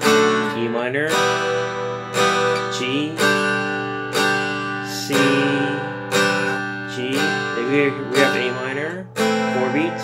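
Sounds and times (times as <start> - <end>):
guitar strumming chord: 0.0 - 10.0.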